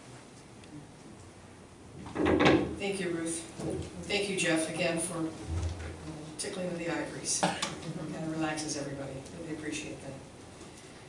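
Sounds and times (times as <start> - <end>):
woman speaking: 2.8 - 10.3.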